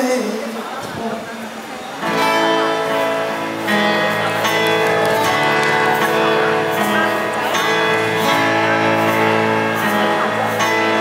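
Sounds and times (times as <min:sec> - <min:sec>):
acoustic pop band playing: 0:02.0 - 0:11.0
held keyboard chords: 0:02.0 - 0:11.0
strummed acoustic guitars: 0:02.0 - 0:11.0.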